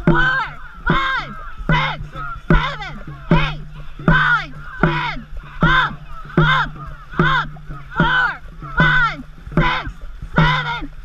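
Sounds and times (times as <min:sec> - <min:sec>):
person shouting calls: 0:00.0 - 0:10.9.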